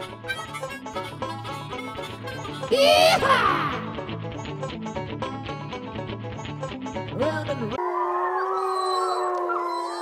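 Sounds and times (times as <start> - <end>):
wolves howling: 7.8 - 10.0.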